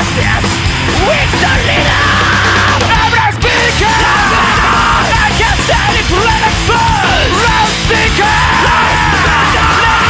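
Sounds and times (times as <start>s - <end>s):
thrashcore band playing: 0.0s - 10.0s
shouted vocals: 1.0s - 10.0s.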